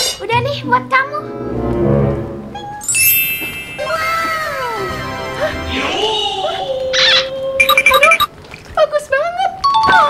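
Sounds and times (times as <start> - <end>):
twinkling magic sparkle effect: 2.8 - 4.8.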